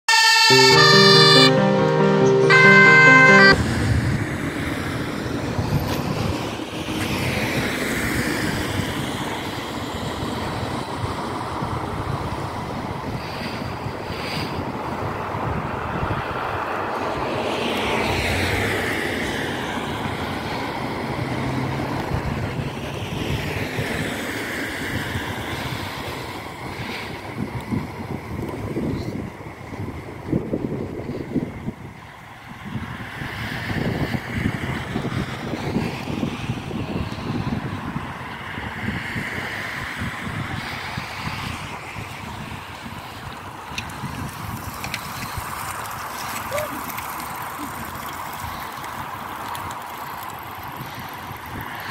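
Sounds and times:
emergency vehicle siren wailing: 0.1s - 4.1s
road traffic: 0.1s - 51.9s
music: 0.4s - 3.9s
wind noise on microphone: 3.6s - 47.1s, 50.4s - 51.9s.

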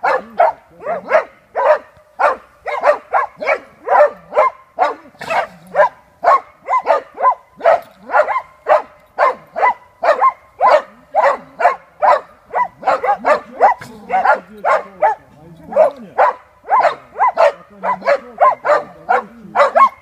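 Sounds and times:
dogs barking sharply: 0.0s - 20.0s.

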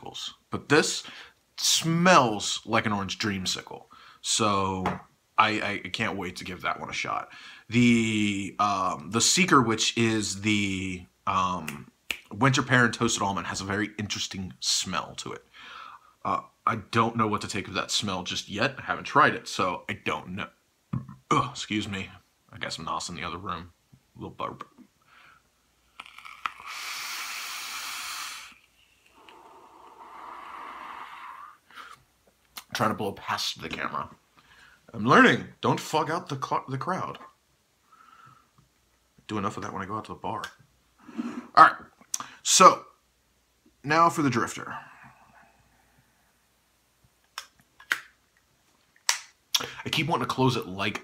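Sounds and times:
airy hiss of air drawn: 26.6s - 31.6s
person exhaling: 26.6s - 32.0s, 41.0s - 41.6s, 44.6s - 46.4s.

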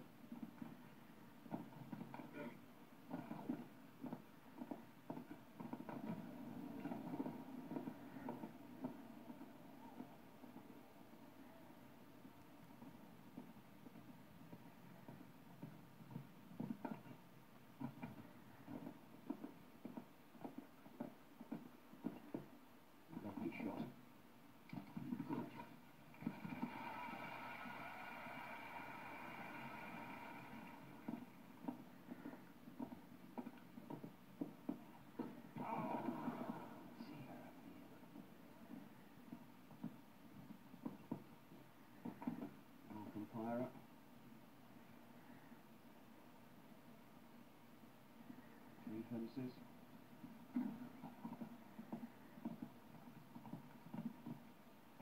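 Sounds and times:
horse hooves thudding: 0.0s - 11.3s, 11.9s - 23.9s, 24.6s - 44.5s, 49.6s - 55.0s.

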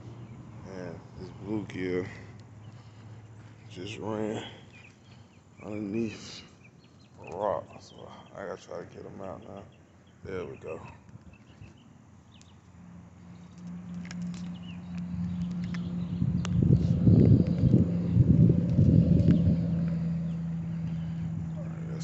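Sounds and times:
low hum: 12.4s - 22.0s.

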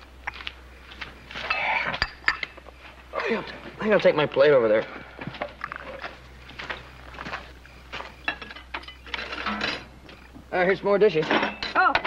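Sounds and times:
steady low hum: 0.0s - 12.0s
footsteps: 0.2s - 10.5s
plates and cutlery clinking: 8.0s - 9.9s, 11.2s - 12.0s.

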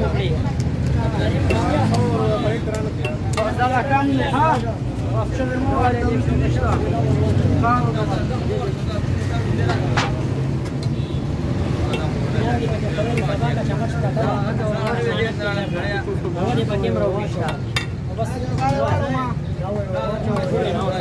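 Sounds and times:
road traffic rumble: 0.0s - 21.0s
voices talking: 0.0s - 21.0s.

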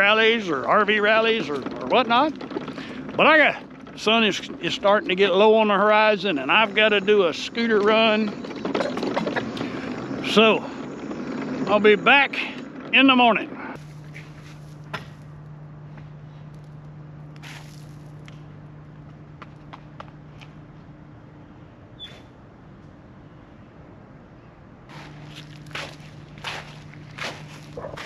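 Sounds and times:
steady low hum: 0.0s - 28.0s
footsteps on pine needles: 13.8s - 15.2s, 17.4s - 18.1s, 24.9s - 28.0s.

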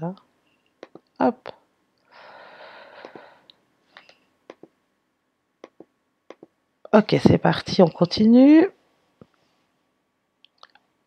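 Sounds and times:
person breathing close to microphone: 2.1s - 3.5s.

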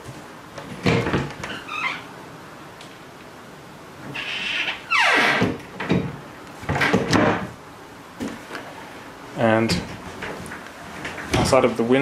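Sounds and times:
door hinge creaking: 0.8s - 2.1s, 4.1s - 6.0s.

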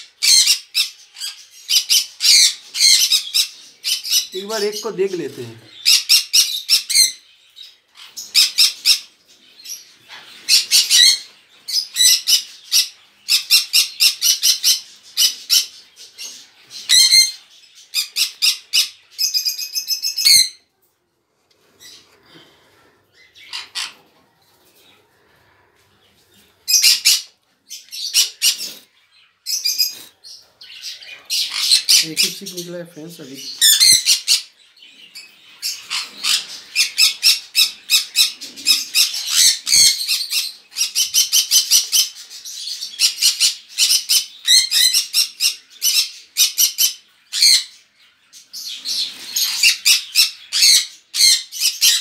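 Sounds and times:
parrots squawking: 0.0s - 20.6s, 23.2s - 24.1s, 26.6s - 32.6s, 33.4s - 34.6s, 35.2s - 47.8s, 48.7s - 52.0s.

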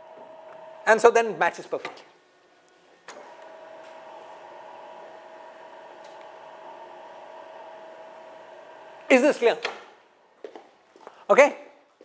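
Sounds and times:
mechanical hum with high whine: 0.0s - 10.6s.

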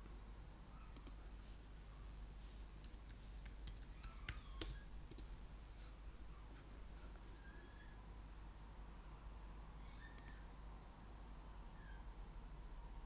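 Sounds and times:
computer keyboard typing: 2.8s - 5.3s.

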